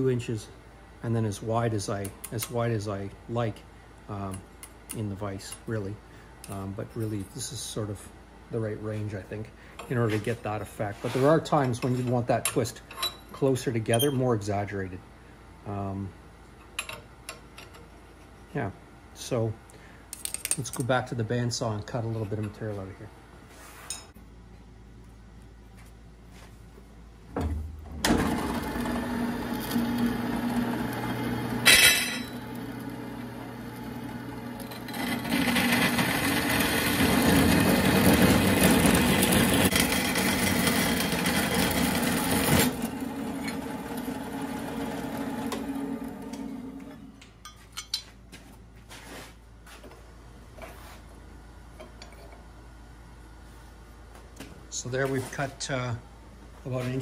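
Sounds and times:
bandsaw cutting steel: 28.2s - 32.9s, 34.0s - 47.0s.

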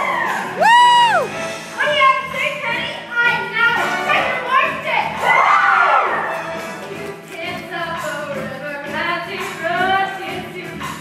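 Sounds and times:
backing music: 0.0s - 11.0s.

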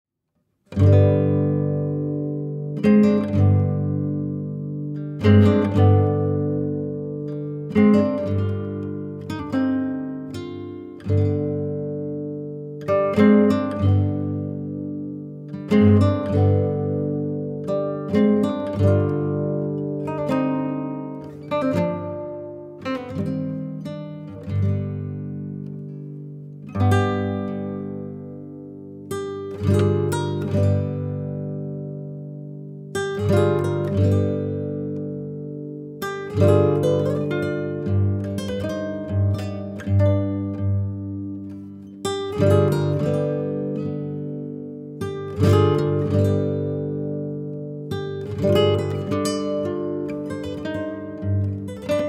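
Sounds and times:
acoustic guitar strumming chords: 0.7s - 52.0s.

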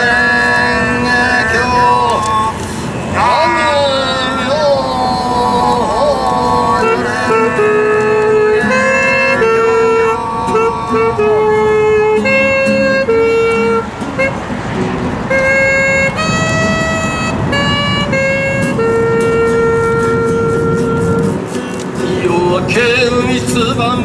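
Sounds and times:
saxophone slow melody: 0.0s - 22.8s.

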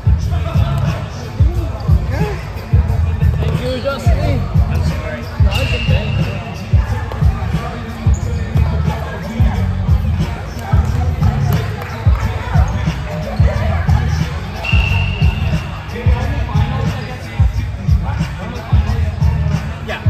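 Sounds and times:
players chatting: 0.0s - 20.0s.

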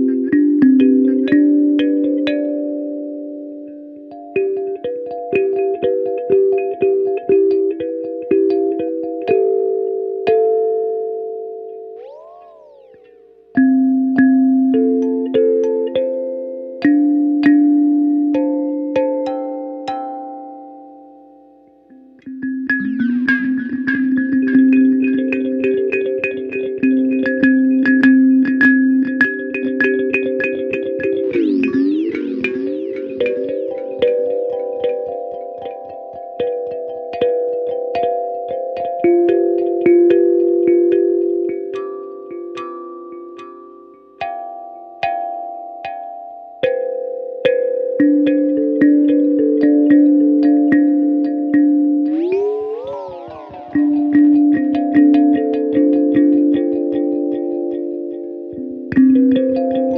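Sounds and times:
electric kalimba with echoing delay: 0.0s - 59.9s.

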